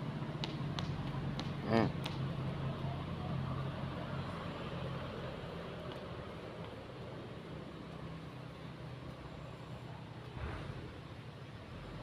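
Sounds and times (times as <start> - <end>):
outdoor background noise: 0.0 - 12.0
vehicle engine humming: 0.0 - 12.0.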